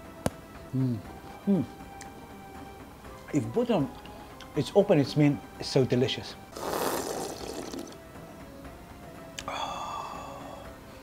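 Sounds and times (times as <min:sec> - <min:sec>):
soft background music: 0:00.0 - 0:11.0
slurping broth: 0:06.5 - 0:08.0.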